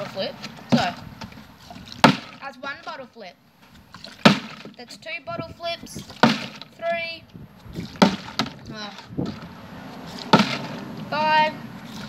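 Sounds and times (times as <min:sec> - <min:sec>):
plastic bottle thud on concrete: 0:02.0 - 0:02.4, 0:04.2 - 0:04.8, 0:06.2 - 0:06.7, 0:08.0 - 0:08.6, 0:10.3 - 0:10.8
plastic bottle knocks: 0:08.0 - 0:08.6.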